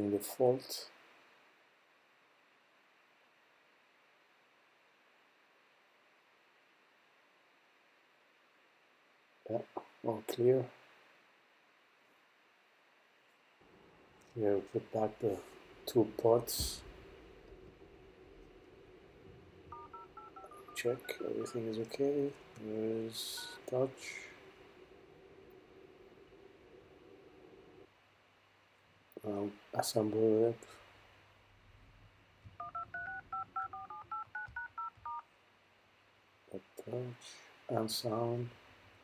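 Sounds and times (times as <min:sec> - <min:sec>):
phone keypad tones: 0:19.7 - 0:21.9, 0:22.5 - 0:23.8, 0:32.6 - 0:35.2.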